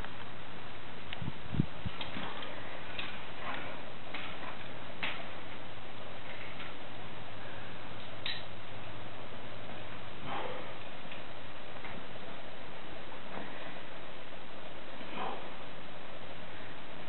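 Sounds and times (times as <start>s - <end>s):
steady background hiss: 0.0s - 17.0s.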